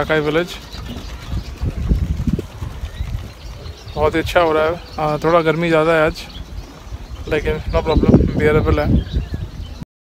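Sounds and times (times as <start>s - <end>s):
wind buffeting microphone: 0.0s - 9.8s.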